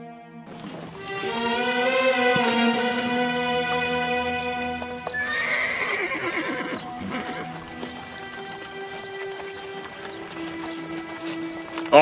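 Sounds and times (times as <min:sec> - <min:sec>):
score music with held notes: 0:00.0 - 0:12.0
horse whinnying: 0:05.1 - 0:08.2.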